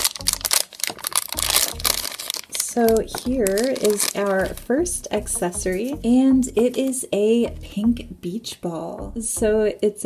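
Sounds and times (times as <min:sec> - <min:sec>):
plastic bag crinkling and tearing: 0:00.0 - 0:04.7.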